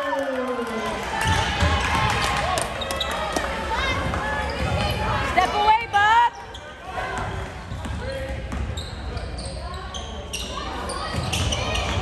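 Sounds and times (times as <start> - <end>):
murmur of spectators: 0.0 - 12.0.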